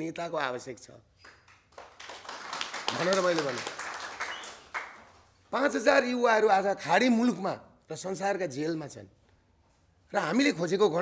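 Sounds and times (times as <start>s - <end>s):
audience clapping: 1.2s - 5.3s.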